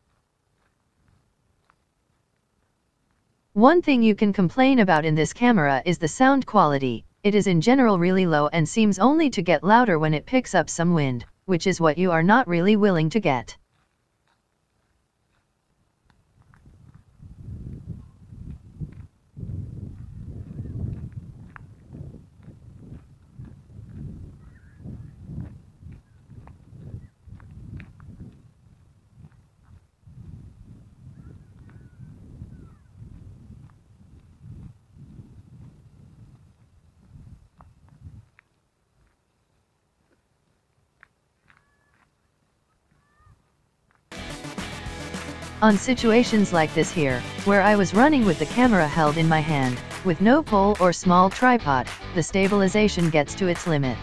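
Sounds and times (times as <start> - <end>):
wind buffeting microphone: 16.6 - 38.4
music: 44.1 - 54.0.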